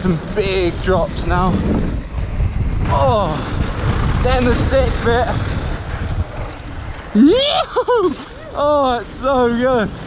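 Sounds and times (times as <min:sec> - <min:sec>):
bike tyres on dirt trail: 0:00.0 - 0:10.0
wind buffeting microphone: 0:00.0 - 0:10.0
excited yelps: 0:07.2 - 0:08.6
person whooping: 0:07.2 - 0:08.6.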